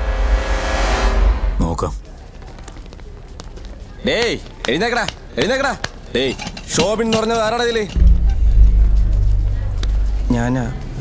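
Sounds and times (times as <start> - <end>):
deep bass boom and drone: 0.0 - 1.6, 8.0 - 11.0.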